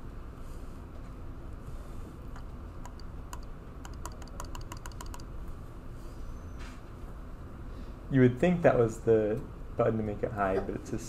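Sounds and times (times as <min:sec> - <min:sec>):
low room hum: 0:00.0 - 0:11.0
computer keyboard typing: 0:02.8 - 0:05.3.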